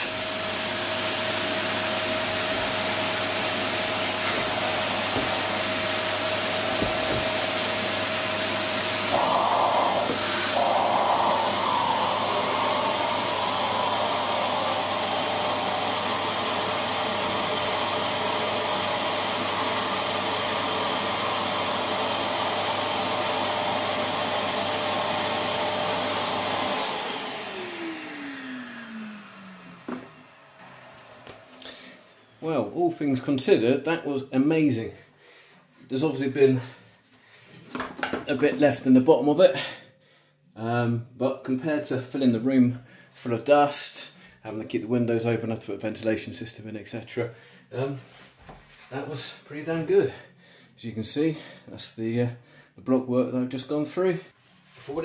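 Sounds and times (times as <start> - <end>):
vacuum motor winding down: 0.0 - 32.7
vacuum cleaner running: 0.0 - 34.8.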